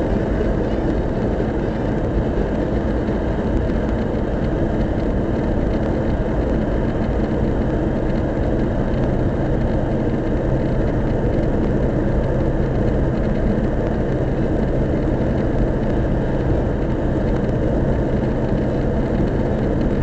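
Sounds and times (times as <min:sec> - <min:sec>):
car engine and tyre noise: 0:00.0 - 0:20.0
constant low hum: 0:00.0 - 0:20.0.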